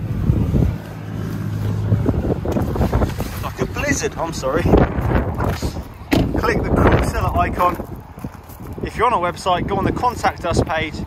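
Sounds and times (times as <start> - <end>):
wind rumbling on microphone: 0.0 - 11.0
car door opening: 5.4 - 6.6.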